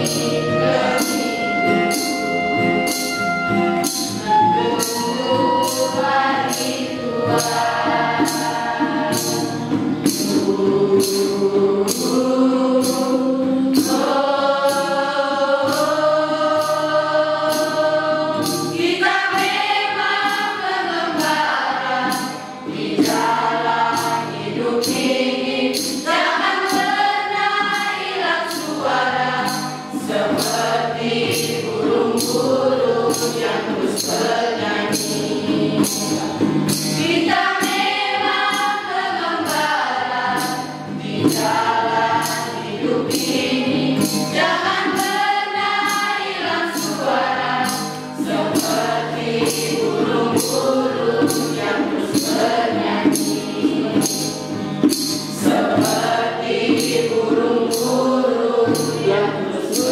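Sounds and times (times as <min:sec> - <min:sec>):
choir singing slow song: 0:00.0 - 0:02.1, 0:03.9 - 0:59.9
acoustic guitar: 0:00.0 - 0:59.9
light percussion beat: 0:00.0 - 0:59.9.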